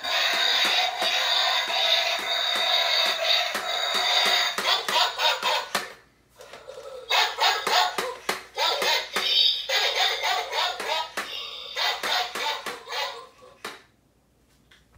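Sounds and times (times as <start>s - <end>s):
toy sound effects through small speaker: 0.0s - 13.7s.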